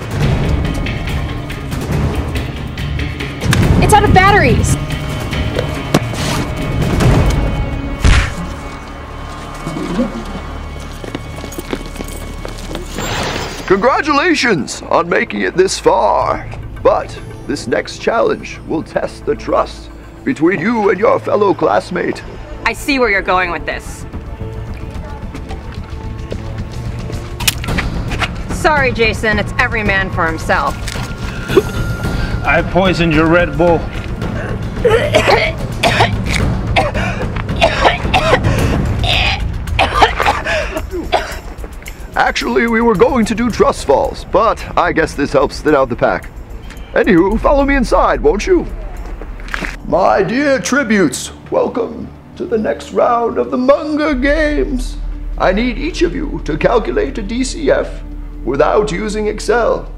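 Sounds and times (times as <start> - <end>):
background music: 0.0 - 59.9
running footsteps on pavement: 9.2 - 13.0, 24.3 - 28.5
person coughing: 34.8 - 41.5.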